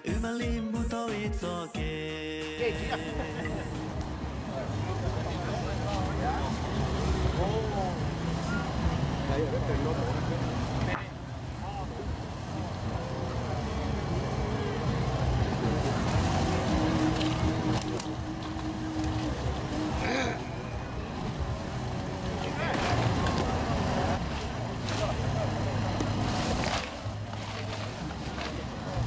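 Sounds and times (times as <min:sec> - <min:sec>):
voices talking: 0:00.0 - 0:29.0.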